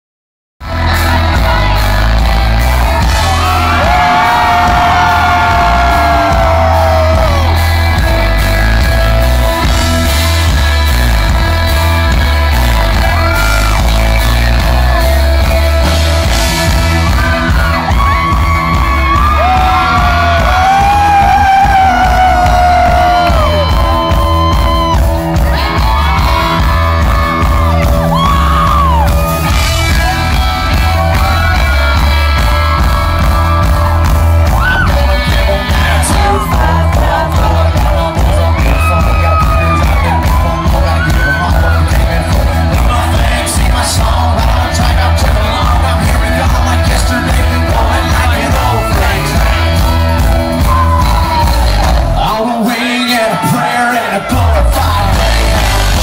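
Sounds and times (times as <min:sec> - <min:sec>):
crowd whooping and shouting: 0:00.6 - 0:56.0
live country band playing: 0:00.6 - 0:56.0.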